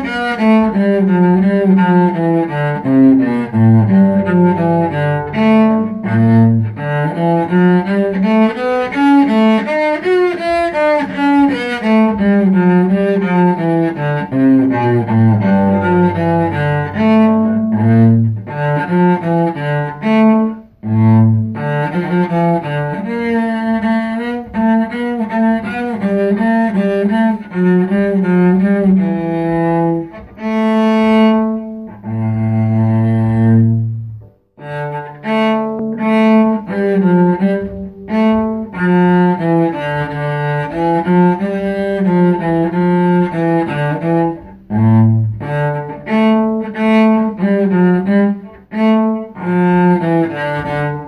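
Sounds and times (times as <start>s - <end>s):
solo cello melody: 0.0s - 51.0s.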